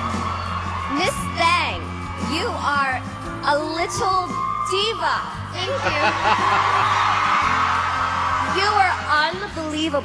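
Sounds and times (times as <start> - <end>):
audience cheering and applauding: 0.0 - 10.0
background music: 0.0 - 10.0.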